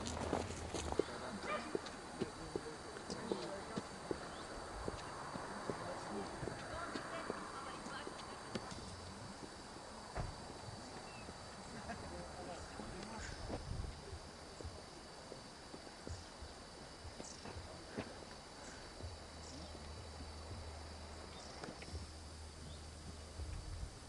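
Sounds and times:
footsteps on a road: 0:00.0 - 0:23.9
faint voices: 0:00.3 - 0:23.2.

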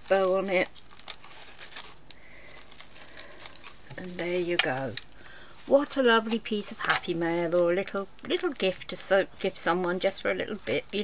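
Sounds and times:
cellophane crinkling and rustling: 0:00.0 - 0:08.8, 0:09.4 - 0:11.0.

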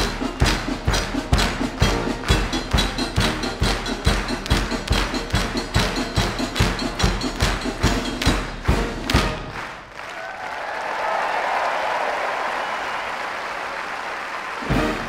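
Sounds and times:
live band playing: 0:00.0 - 0:09.6
loud percussive strikes: 0:00.0 - 0:09.9
audience applause: 0:00.0 - 0:15.0.

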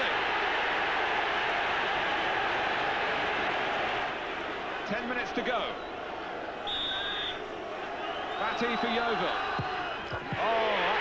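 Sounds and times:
stadium crowd noise: 0:00.0 - 0:11.0
referee's whistle blast: 0:06.7 - 0:07.4.

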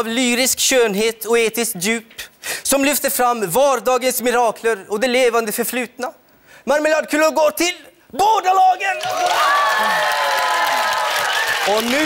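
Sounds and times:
children cheering and shrieking: 0:09.2 - 0:11.1.

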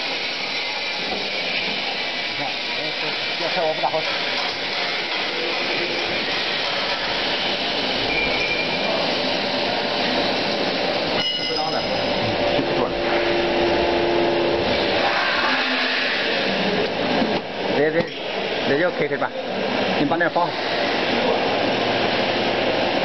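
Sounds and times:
gas burners and machinery rushing: 0:00.0 - 0:23.0.

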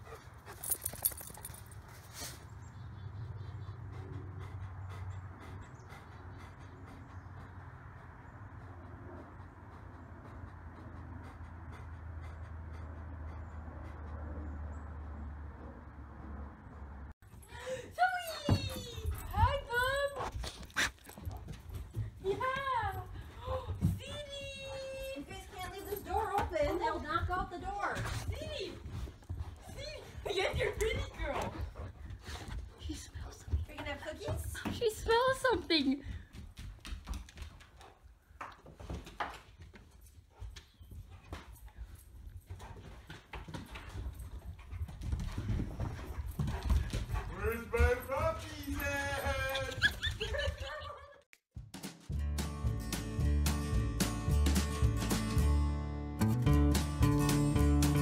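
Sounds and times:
paws thumping on carpet: 0:38.6 - 0:48.1.

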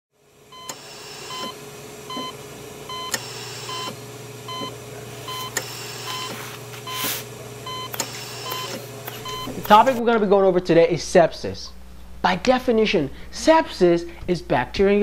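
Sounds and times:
electronic beeping: 0:00.6 - 0:10.0
sharp clicks: 0:07.9 - 0:10.0.

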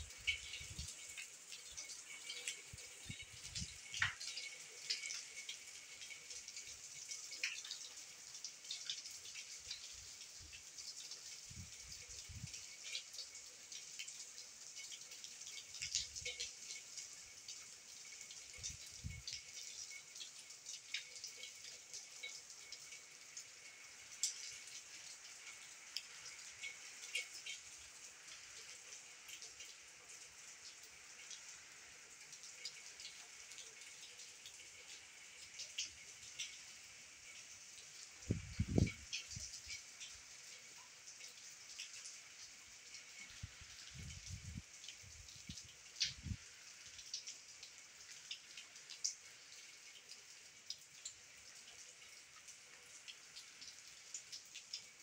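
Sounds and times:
rain on a glass roof: 0:00.0 - 0:55.0.

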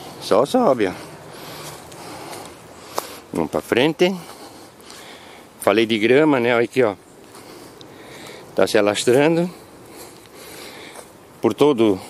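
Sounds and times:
footsteps rustling dry grass: 0:00.0 - 0:12.0
man breathing: 0:00.8 - 0:03.4, 0:04.0 - 0:05.6, 0:07.2 - 0:08.6, 0:09.4 - 0:12.0.

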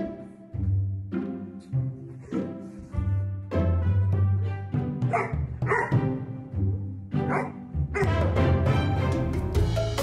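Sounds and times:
background music: 0:00.0 - 0:10.0
dog barking: 0:05.1 - 0:06.1, 0:07.2 - 0:08.2.

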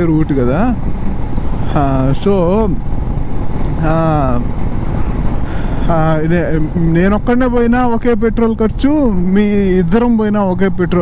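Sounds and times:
man speaking: 0:00.0 - 0:00.8, 0:01.6 - 0:02.8, 0:03.7 - 0:04.5, 0:05.8 - 0:11.0
motorcycle road noise: 0:00.0 - 0:11.0
wind buffeting: 0:00.0 - 0:11.0.

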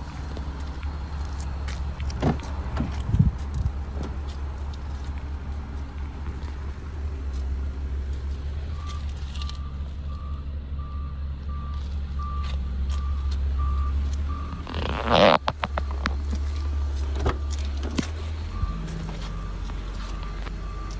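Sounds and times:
steady low rumble: 0:00.0 - 0:20.9
short electronic beeps: 0:08.7 - 0:14.7.

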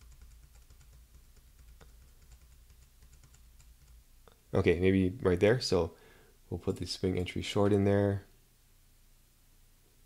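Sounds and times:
computer keyboard clicks: 0:00.0 - 0:04.0
low steady hum: 0:00.0 - 0:10.0.

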